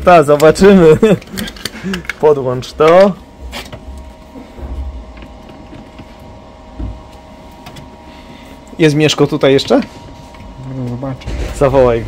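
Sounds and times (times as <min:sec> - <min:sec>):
cooling fan humming: 0:00.0 - 0:12.0.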